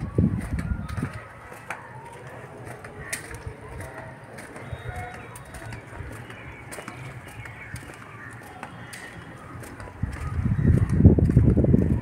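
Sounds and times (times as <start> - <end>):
bird calling: 0.8 - 10.8.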